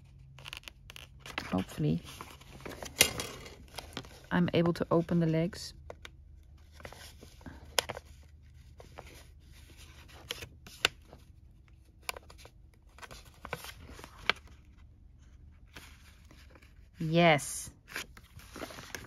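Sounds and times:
paper envelopes rustling: 0:00.0 - 0:16.9, 0:17.9 - 0:19.0.

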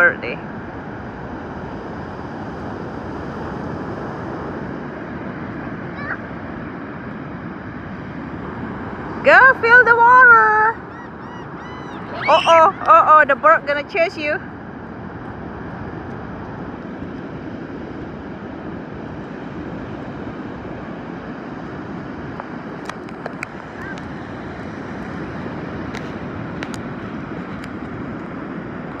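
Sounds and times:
wind on microphone: 0:00.0 - 0:29.0
surf breaking on shore: 0:02.6 - 0:16.4.

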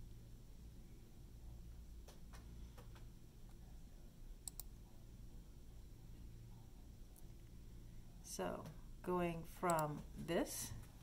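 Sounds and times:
computer mouse clicks: 0:04.4 - 0:04.7.

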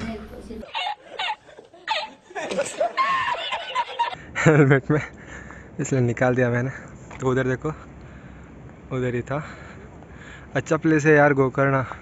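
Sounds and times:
man laughing hard: 0:00.7 - 0:04.8.

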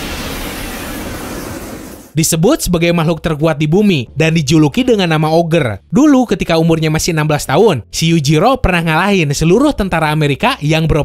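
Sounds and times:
loud rushing noise: 0:00.0 - 0:02.2.

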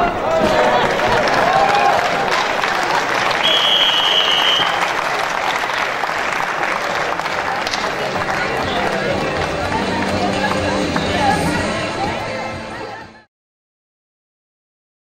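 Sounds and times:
spectators applauding: 0:00.0 - 0:11.8
long high whistle blast: 0:03.4 - 0:04.9.

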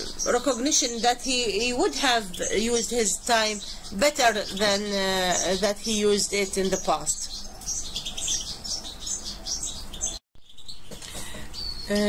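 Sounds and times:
small birds chirping: 0:00.0 - 0:12.0.

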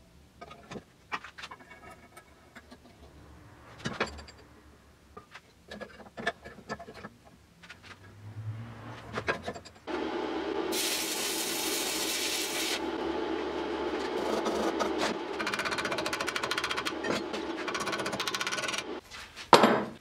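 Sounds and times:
electric welding crackling hiss: 0:10.5 - 0:13.0.

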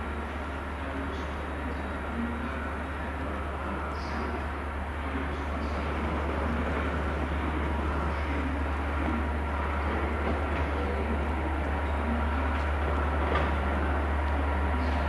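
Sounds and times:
diesel locomotive engine: 0:00.0 - 0:15.0
passenger train approaching: 0:00.0 - 0:15.0.

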